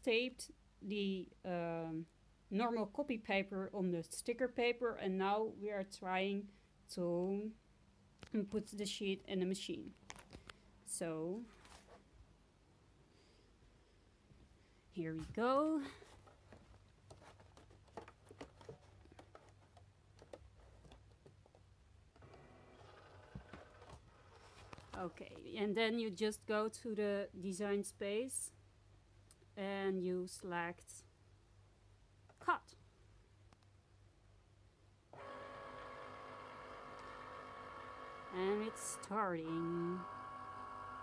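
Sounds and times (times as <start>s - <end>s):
cutting machine rollers whirring: 35.2s - 41.0s.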